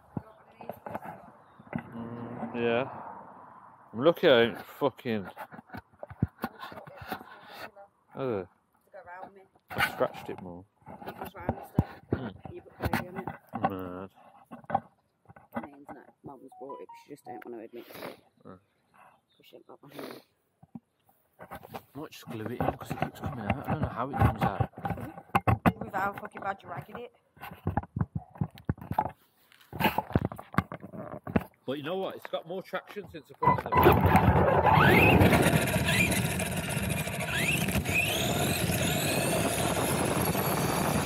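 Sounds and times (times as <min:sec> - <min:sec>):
man murmuring: 0:01.9 - 0:02.8.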